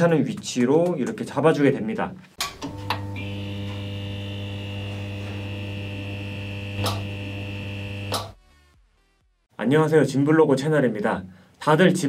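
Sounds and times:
electric mains hum: 2.4s - 8.4s
electrical crackle: 2.6s - 8.4s
thin high whine: 2.6s - 8.4s
switch clicks: 6.8s - 7.1s, 8.0s - 8.4s.

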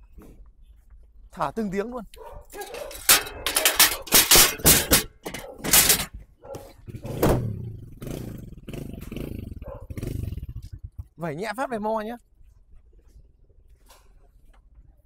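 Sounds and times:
metal ramp clattering and banging: 2.5s - 7.8s
motorcycle engine idling: 6.9s - 11.2s.

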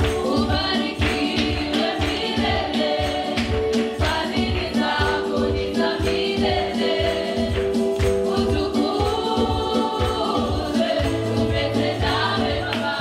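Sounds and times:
instrumental backing with beat: 0.0s - 13.0s
women singing gospel song: 0.0s - 13.0s.

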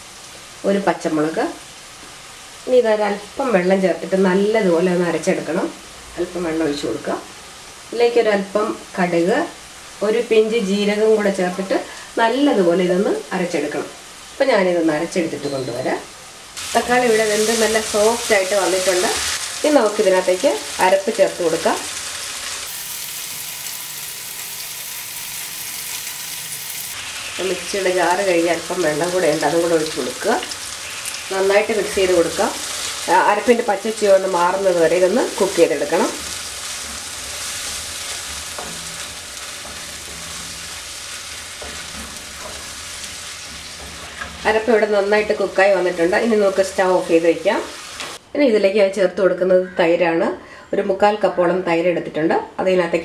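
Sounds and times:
tomatoes sizzling in oil: 0.0s - 48.2s.

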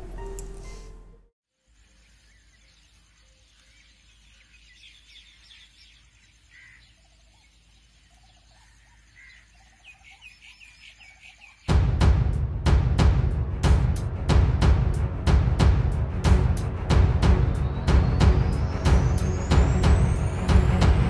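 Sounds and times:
birds chirping: 1.7s - 11.8s, 17.0s - 21.0s
loud music: 11.7s - 21.0s.

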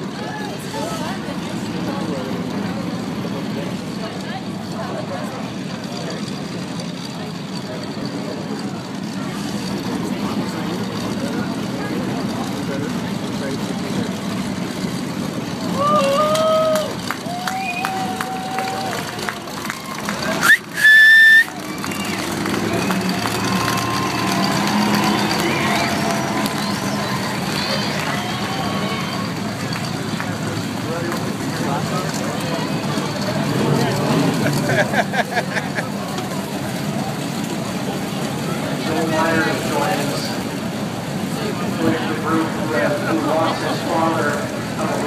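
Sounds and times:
crowd chatter: 0.0s - 45.0s
race car engines: 0.0s - 45.0s.

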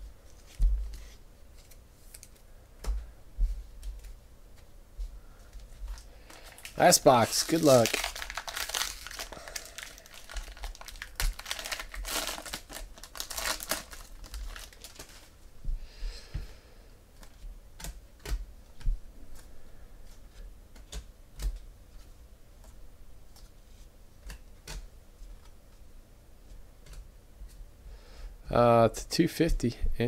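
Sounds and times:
foil wrapper tearing and crinkling: 6.3s - 15.3s.

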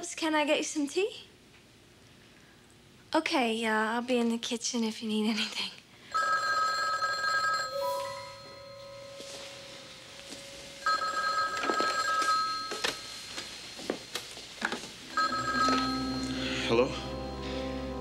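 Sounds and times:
telephone electronic ringer: 6.2s - 13.2s, 15.1s - 16.4s.

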